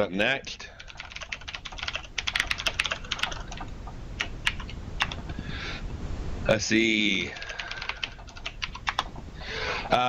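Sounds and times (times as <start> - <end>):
computer keyboard typing: 0.8 - 5.3, 7.3 - 9.2.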